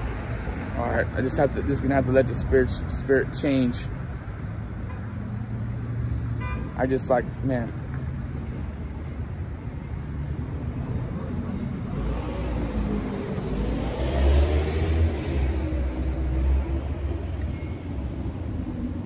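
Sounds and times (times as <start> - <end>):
steady traffic noise: 0.0 - 19.0
vehicle engine passing by: 11.3 - 17.5.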